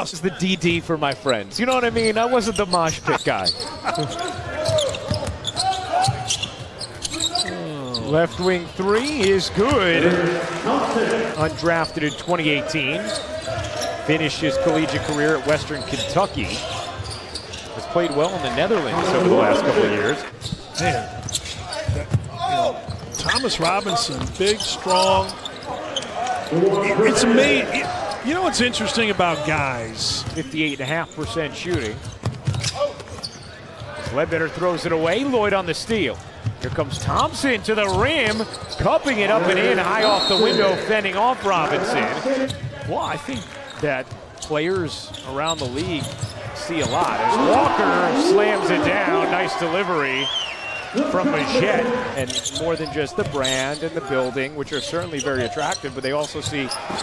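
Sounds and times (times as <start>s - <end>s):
crowd hum: 3.0s - 21.6s, 23.3s - 30.6s, 37.5s - 42.7s, 45.7s - 52.8s
commentator's voice: 7.4s - 13.1s, 17.9s - 21.0s, 26.5s - 31.9s, 36.8s - 43.4s, 45.5s - 50.3s, 51.0s - 54.3s.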